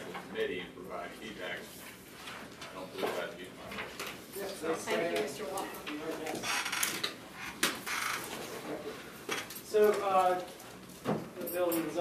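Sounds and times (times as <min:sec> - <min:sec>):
low conversation: 0:00.0 - 0:07.0.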